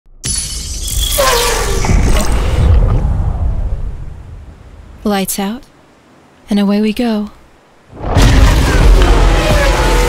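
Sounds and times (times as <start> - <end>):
loud deep hit: 8.0 - 9.3
race car engines revving: 8.1 - 10.0.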